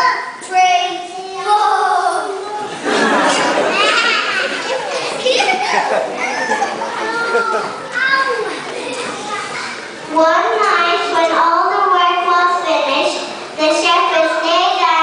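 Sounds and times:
young children talking at once: 3.4s - 15.0s.

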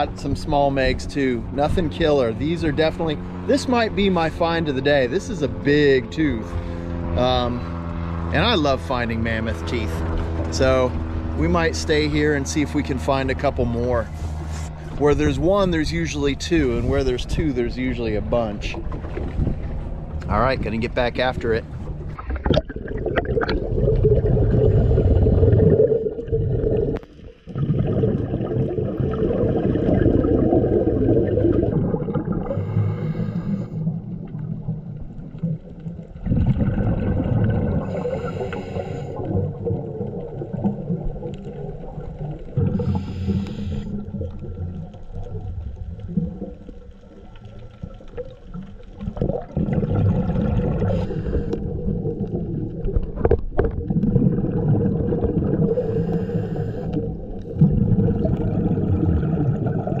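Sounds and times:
bubbles rushing: 8.3s - 60.0s
breathing through a regulator: 32.4s - 33.9s, 37.8s - 39.3s, 42.7s - 44.1s, 50.8s - 51.8s, 55.6s - 57.2s.

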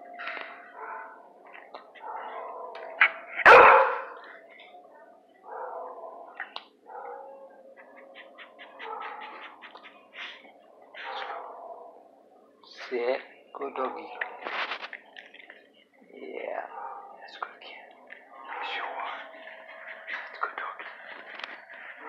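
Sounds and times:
dog barking: 0.8s - 1.3s, 2.0s - 4.2s, 5.4s - 9.8s, 11.0s - 12.1s, 13.8s - 14.6s, 16.6s - 17.2s, 18.4s - 19.2s.

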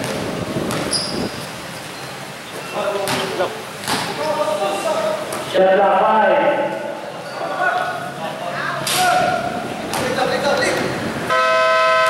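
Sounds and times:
electric buzzer horn: 11.3s - 12.0s.

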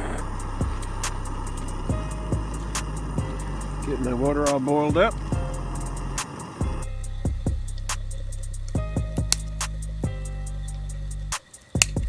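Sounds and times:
background music: 0.0s - 12.0s
gas stove burner running: 0.0s - 12.0s.

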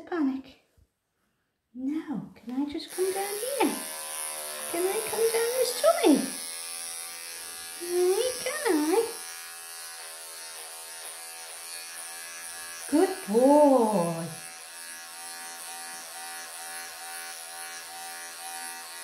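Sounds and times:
electric pet clippers buzzing: 2.7s - 19.0s
drawn-out voiced sounds: 2.8s - 4.0s, 4.6s - 6.5s, 7.8s - 9.2s, 12.8s - 14.5s.

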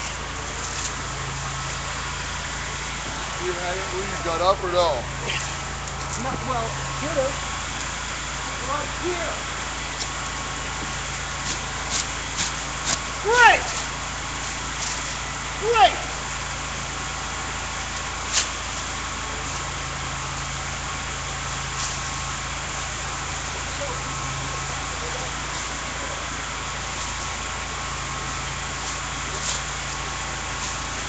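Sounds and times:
engine idling: 0.0s - 31.0s.

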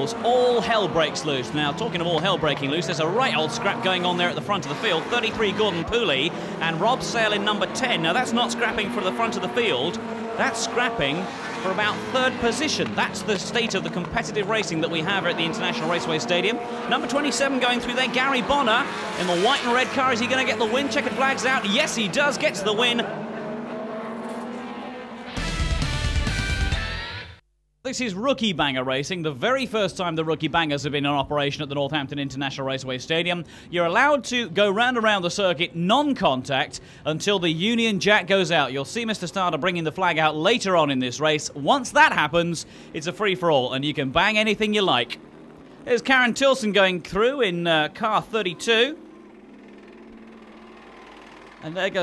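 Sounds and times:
racing engine noise: 0.0s - 27.1s, 37.6s - 52.0s
music sting with heavy bass: 25.3s - 27.0s.

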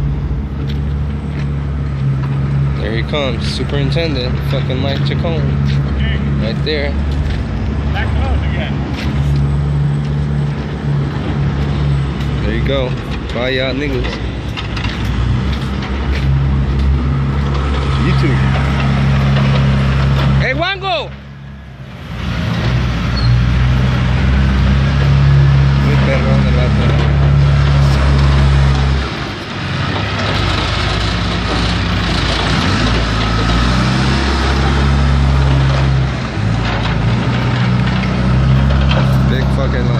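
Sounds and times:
diesel engine of heavy machine: 0.0s - 39.9s.

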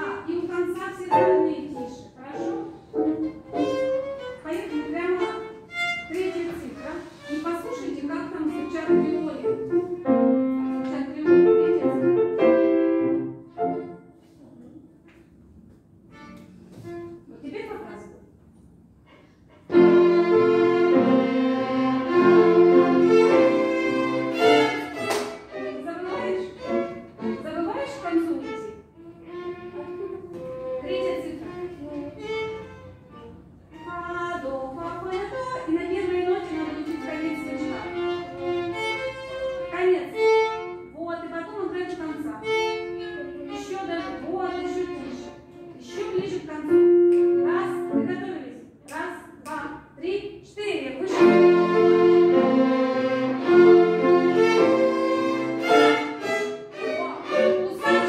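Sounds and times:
violin ensemble playing: 1.1s - 14.0s, 15.9s - 17.4s, 19.7s - 48.0s, 51.0s - 58.0s.

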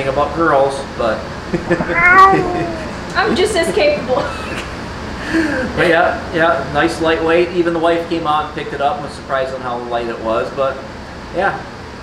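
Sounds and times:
man laughing: 1.6s - 3.0s.

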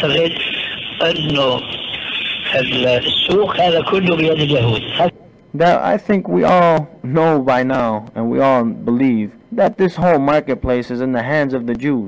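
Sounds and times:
man speaking on old recording: 0.0s - 12.0s.

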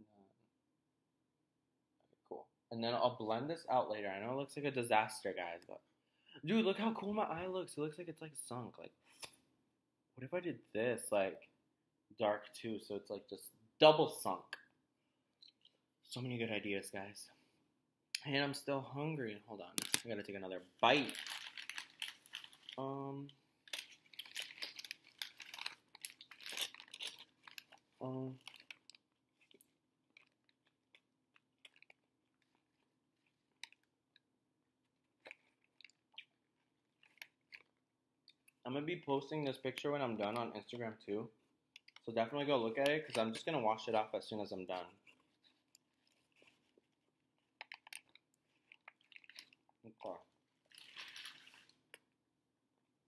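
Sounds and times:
paper wrapper crinkling: 20.8s - 22.8s, 23.6s - 30.9s, 50.6s - 51.8s
person chewing food: 24.2s - 34.2s, 34.8s - 38.6s, 45.0s - 49.8s.

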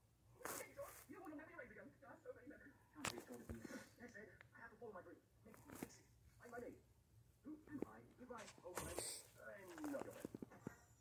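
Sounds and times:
sped-up cartoon voices from tv: 0.5s - 11.0s.

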